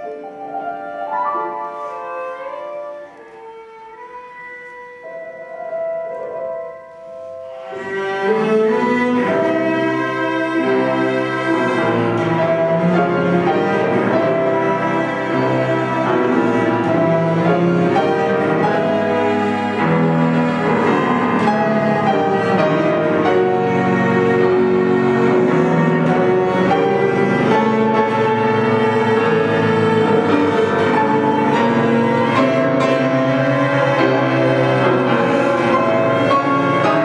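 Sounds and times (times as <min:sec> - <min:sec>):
cello bowing long notes: 0:00.0 - 0:37.0
piano accompaniment: 0:00.0 - 0:37.0.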